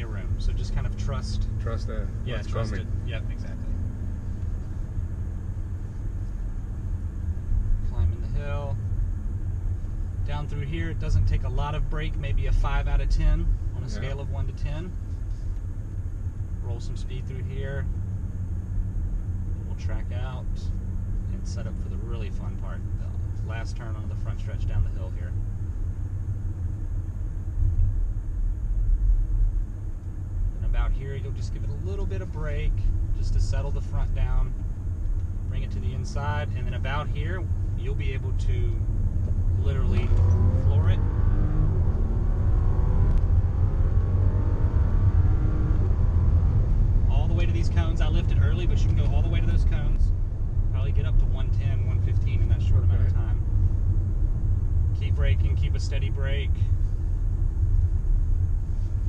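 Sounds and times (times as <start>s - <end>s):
car engine rumble: 0.0s - 59.0s
road noise: 0.0s - 59.0s.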